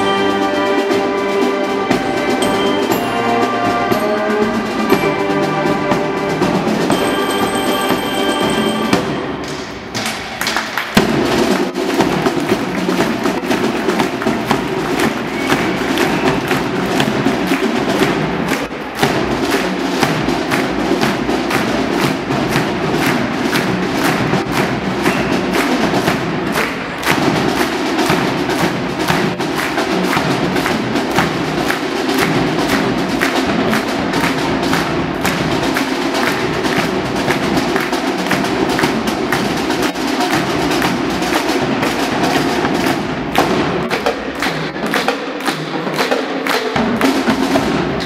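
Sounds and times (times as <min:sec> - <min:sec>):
brass band holding a chord: 0:00.0 - 0:09.4
snare drum and stick strokes: 0:00.0 - 0:48.0.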